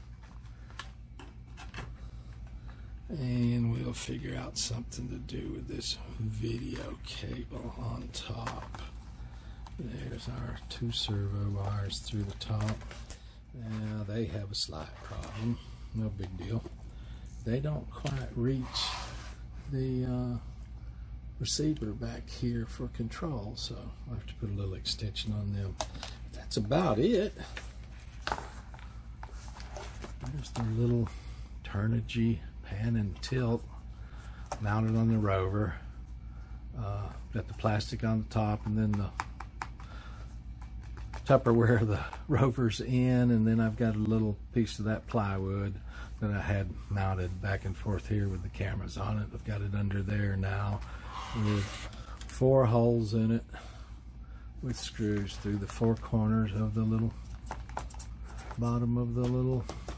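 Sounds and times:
steady low hum: 0.0s - 59.9s
faint clicks and taps: 38.5s - 40.0s.

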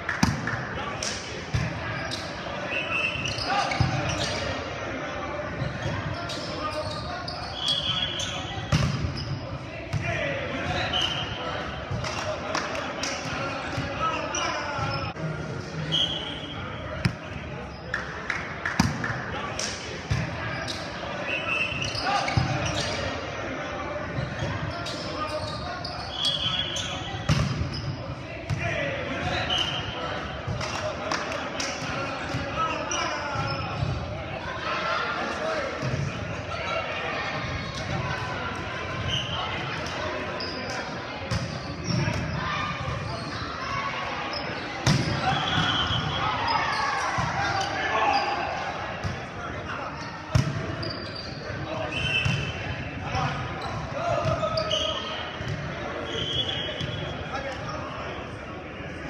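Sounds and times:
sneakers squeaking on court: 1.5s - 4.6s, 5.5s - 10.0s, 13.3s - 15.2s, 20.1s - 23.2s, 24.1s - 28.0s, 32.3s - 34.0s, 49.0s - 52.7s, 53.4s - 57.1s.

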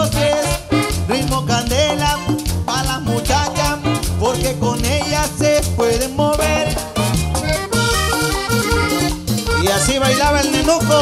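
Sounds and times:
bass and percussion beat: 0.0s - 11.0s
lead melody: 0.0s - 11.0s.

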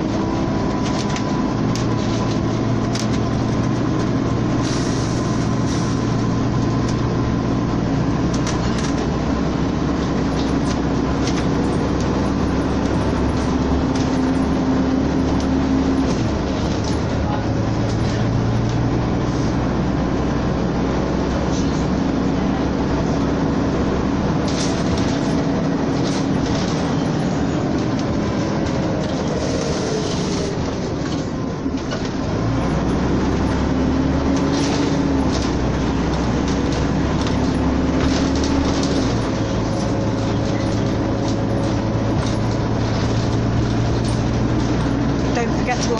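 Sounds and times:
bus body rattling: 0.0s - 45.9s
bus engine drone: 0.0s - 45.9s.

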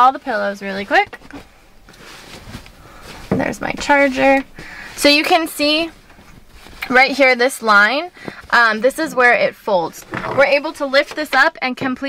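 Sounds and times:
bedding rustling: 0.0s - 12.0s.

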